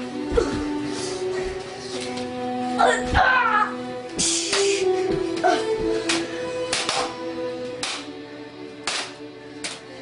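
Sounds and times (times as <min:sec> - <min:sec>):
music with held notes: 0:00.0 - 0:10.0.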